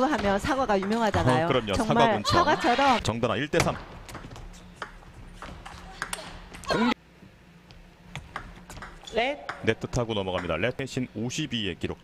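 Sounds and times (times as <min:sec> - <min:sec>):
person shouting: 0:06.7 - 0:07.0.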